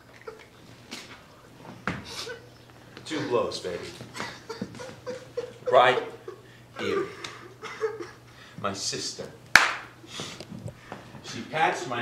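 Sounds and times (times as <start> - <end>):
sharp smack: 9.6 - 9.9.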